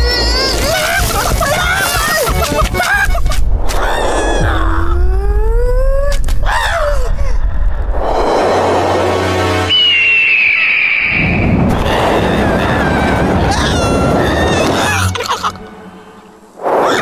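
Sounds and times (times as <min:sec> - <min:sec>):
rising pitched glide: 0:03.3 - 0:05.7
high whistling tone: 0:08.0 - 0:12.2.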